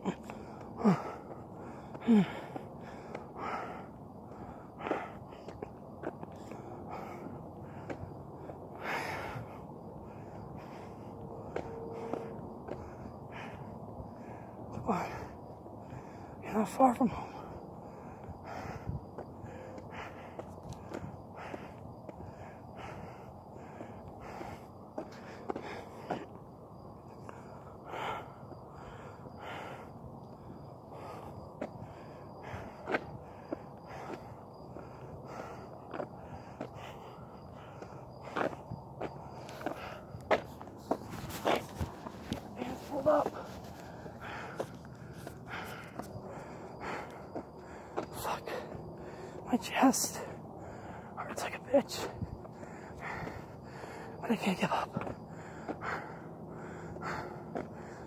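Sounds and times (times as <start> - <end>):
heavy breathing: 0.0 - 58.0
footsteps walking: 38.2 - 48.6.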